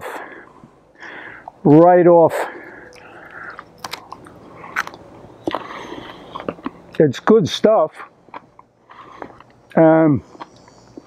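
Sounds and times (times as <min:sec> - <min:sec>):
man chewing crisp cabbage: 0:02.6 - 0:07.0, 0:08.0 - 0:11.0.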